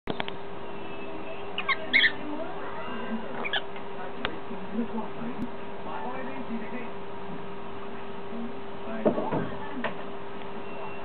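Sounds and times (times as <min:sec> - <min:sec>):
bird chirping: 0:00.1 - 0:03.8
steady low hum: 0:00.1 - 0:11.0.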